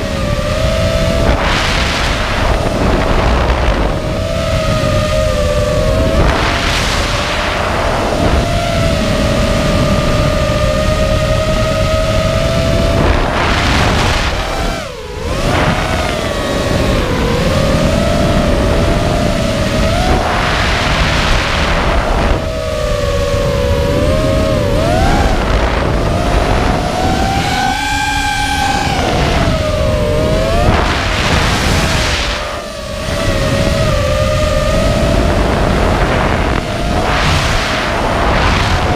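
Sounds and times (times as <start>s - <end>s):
drone motors whining: 0.0s - 38.9s
rushing wind noise: 0.0s - 38.9s.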